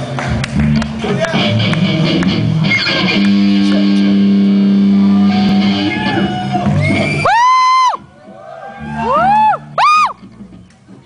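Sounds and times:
live rock band: 0.0 - 11.0
electric guitar notes: 0.3 - 7.2.

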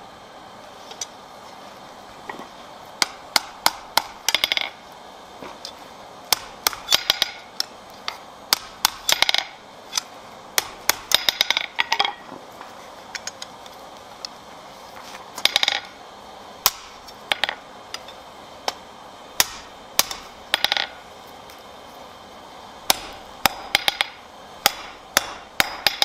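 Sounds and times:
hammer striking iron on anvil: 3.0 - 4.8, 6.3 - 7.5, 8.5 - 9.6, 10.6 - 12.2, 16.6 - 17.6, 19.4 - 21.0, 22.9 - 26.0.

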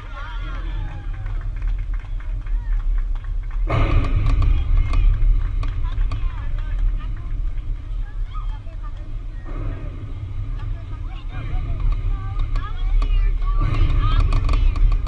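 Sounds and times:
heavy low rumble: 0.0 - 15.0
voices calling and chatting: 0.0 - 15.0.

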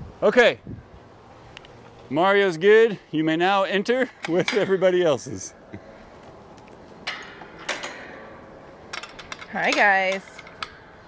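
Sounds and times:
sharp clicks and knocks: 8.9 - 10.8.

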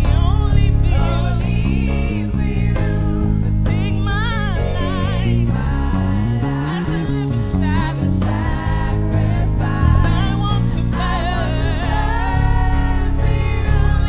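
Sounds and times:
group singing worship song: 0.0 - 14.0
instrumental accompaniment: 7.2 - 14.0
lead voice singing runs: 9.8 - 11.5.

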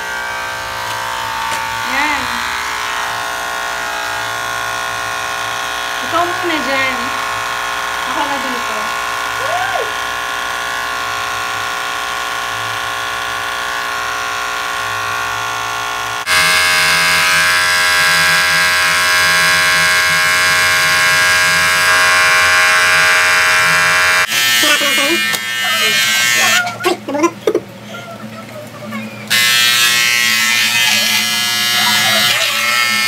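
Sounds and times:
electric hair clipper buzzing: 0.0 - 27.1, 29.2 - 33.0
voices: 24.6 - 29.3.

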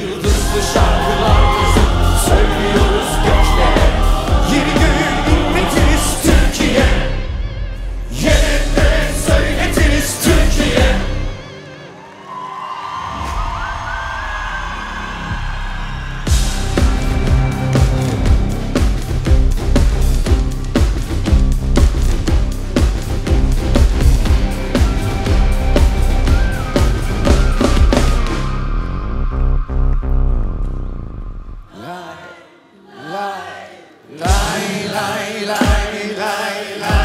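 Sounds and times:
drum hits: 0.2 - 7.1, 34.3 - 34.7
live band playing: 16.3 - 28.8.

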